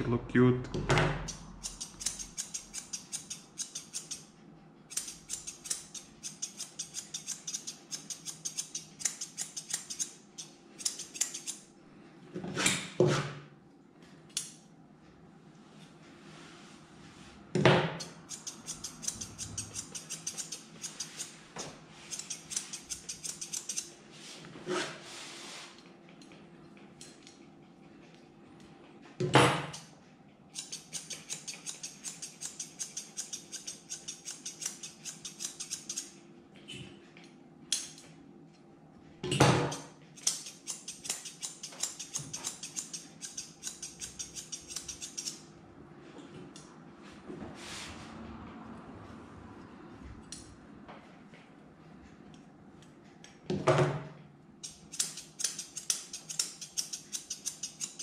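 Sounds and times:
scissors snipping fur: 1.2s - 4.3s, 4.9s - 11.6s, 18.0s - 21.3s, 22.1s - 23.9s, 30.5s - 36.2s, 39.6s - 45.4s, 54.6s - 58.0s.

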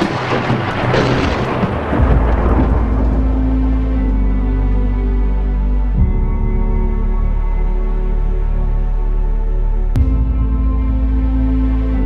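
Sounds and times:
thunder rumble with hiss: 0.0s - 7.1s
dark low music tones: 0.0s - 12.0s.

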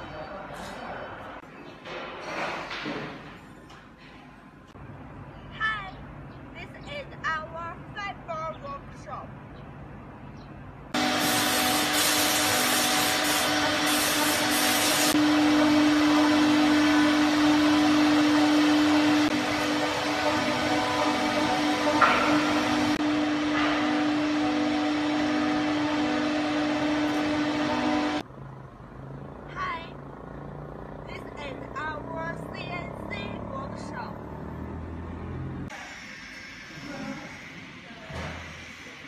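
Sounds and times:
workshop machinery humming: 9.3s - 29.4s, 34.2s - 39.0s.

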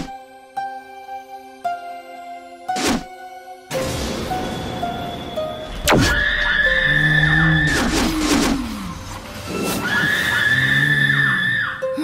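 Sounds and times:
shrill screeching tone: 6.0s - 8.1s, 9.5s - 11.9s.

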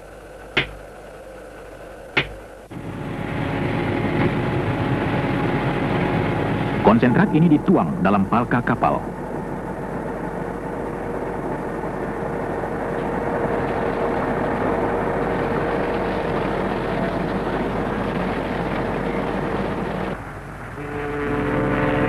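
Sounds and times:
deep many-toned drone: 0.0s - 22.0s
machinery humming: 0.0s - 22.0s.

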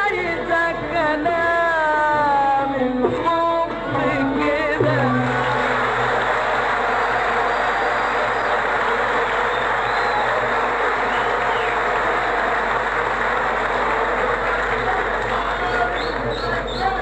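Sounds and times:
audience applauding: 4.8s - 17.0s.

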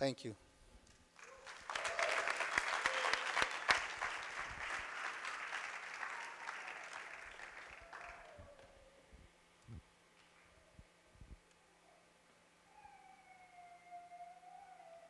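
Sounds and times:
audience applauding: 1.2s - 8.7s.

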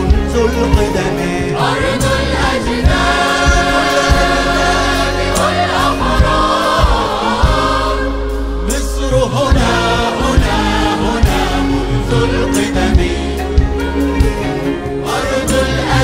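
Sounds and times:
male chorus and band: 0.0s - 16.0s.

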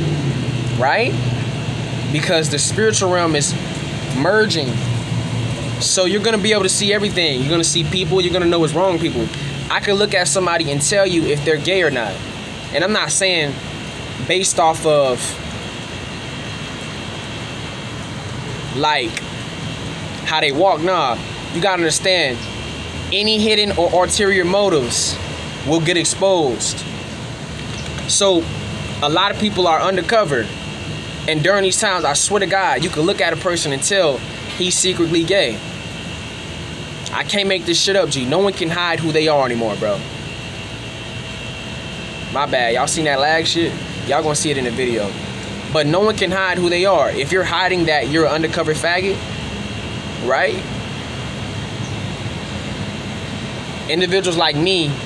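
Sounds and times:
faint high whine: 0.0s - 55.0s
steady engine drone: 0.0s - 55.0s
steady hum and hiss: 0.0s - 55.0s.

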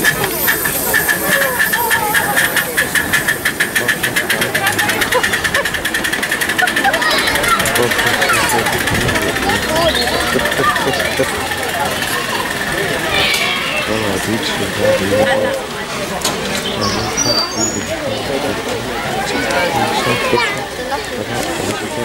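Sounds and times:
steam locomotive exhaust chuffs: 0.0s - 22.0s.

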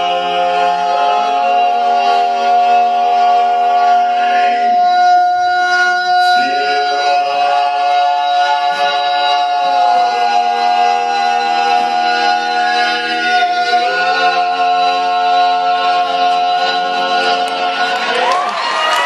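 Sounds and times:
male quartet singing a cappella: 0.0s - 18.6s.

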